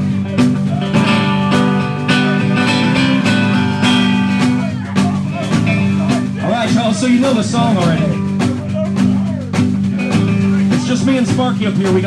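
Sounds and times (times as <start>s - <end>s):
guitars strumming country rhythm: 0.0s - 12.0s.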